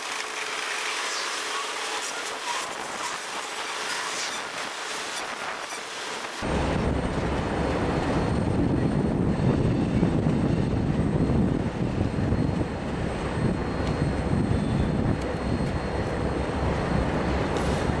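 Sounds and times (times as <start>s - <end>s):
freight train wheels on rails: 0.0s - 18.0s
wheels squealing: 0.3s - 6.1s
heavy low rumble: 6.4s - 18.0s.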